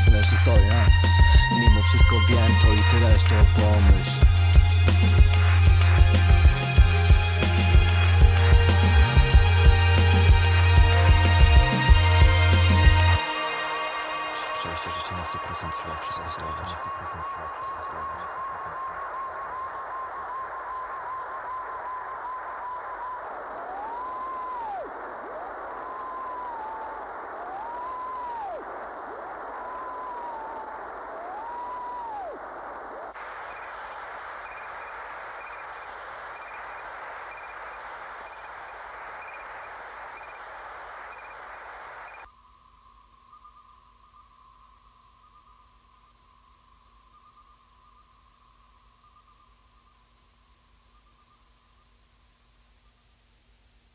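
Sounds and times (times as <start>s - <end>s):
electronic static hiss: 0.0s - 53.9s
wavering steady tone: 12.2s - 52.1s.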